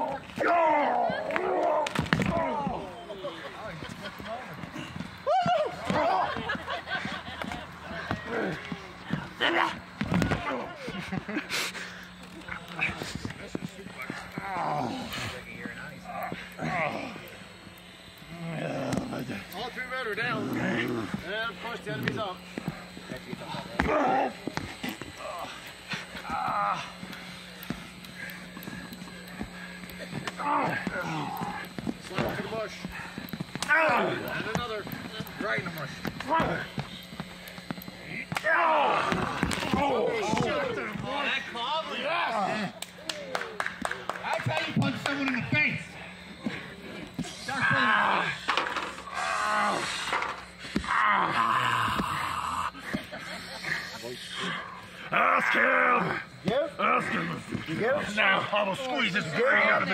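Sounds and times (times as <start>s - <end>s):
men shouting and groaning: 0.0s - 43.5s, 44.4s - 59.9s
faint steady hum: 0.0s - 59.9s.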